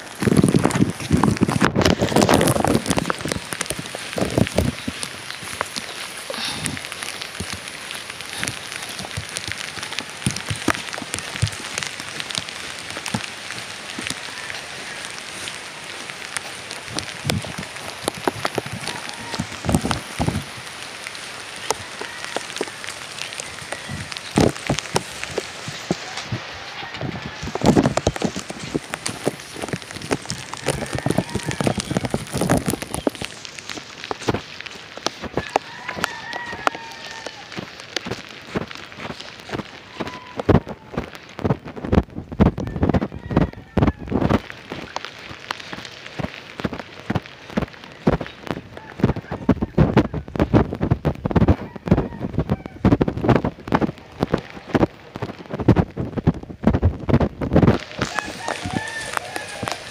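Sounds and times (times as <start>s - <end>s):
heavy rain: 0.0s - 59.9s
raindrops striking nearby surfaces: 0.0s - 59.9s.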